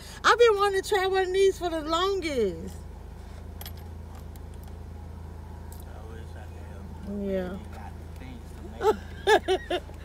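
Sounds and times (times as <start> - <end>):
car engine idling: 0.0 - 10.0
light metallic clinks: 3.6 - 4.8.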